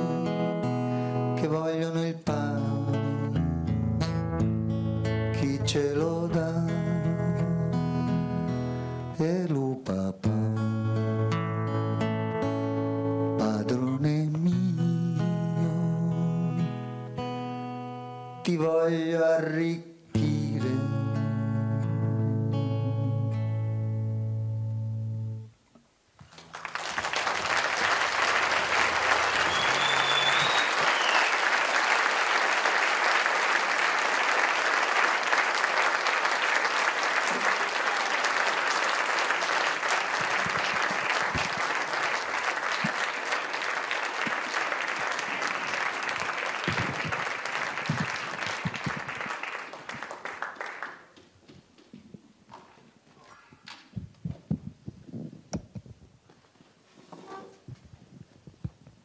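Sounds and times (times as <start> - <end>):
audience applauding: 26.3 - 51.9
whistle from audience: 29.2 - 31.5.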